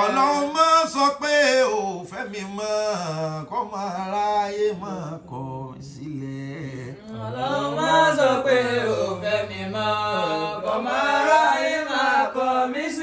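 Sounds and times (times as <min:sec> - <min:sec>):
man chanting: 0:00.0 - 0:09.7.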